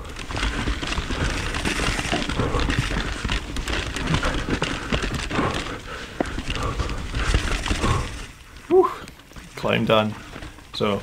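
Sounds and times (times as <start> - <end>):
bike clicks and rattles: 0.0 - 11.0
tyres crunching over gravel: 0.0 - 11.0.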